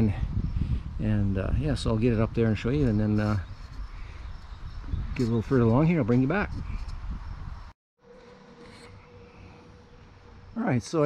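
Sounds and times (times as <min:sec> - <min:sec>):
thin steady hum: 0:00.2 - 0:11.0.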